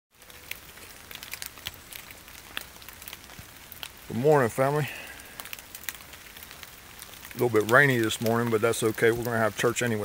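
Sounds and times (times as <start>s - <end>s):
faint steady rain hiss: 0.1s - 10.0s
raindrops ticking: 0.1s - 10.0s.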